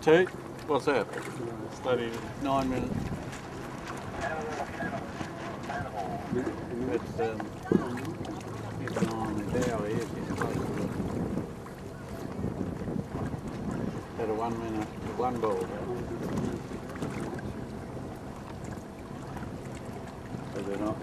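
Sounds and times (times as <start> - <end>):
boat engine hum: 0.0 - 21.0
wind on microphone: 1.7 - 21.0.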